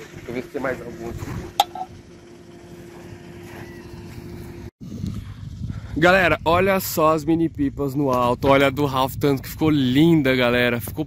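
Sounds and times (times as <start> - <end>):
low motor hum: 0.0 - 6.6
wind on microphone: 3.7 - 11.0.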